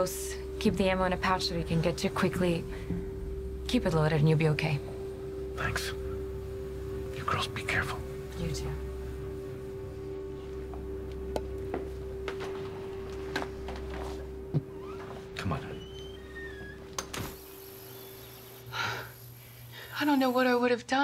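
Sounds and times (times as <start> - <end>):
steady hum: 0.0 - 21.0
faint bird chirps: 17.5 - 18.7.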